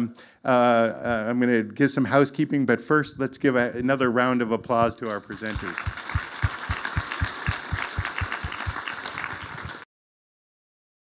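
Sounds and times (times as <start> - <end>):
audience applauding: 5.1 - 9.9.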